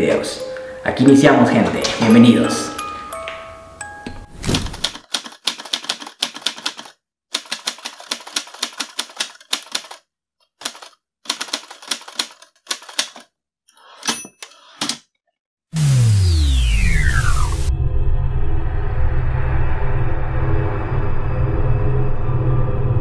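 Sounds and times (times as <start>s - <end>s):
typewriter keystrokes clattering: 4.5s - 10.0s, 10.6s - 13.3s.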